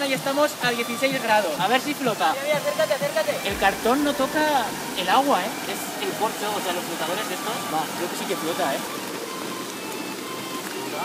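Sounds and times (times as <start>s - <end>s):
faint background music: 0.0s - 11.0s
river water rushing: 0.0s - 11.0s.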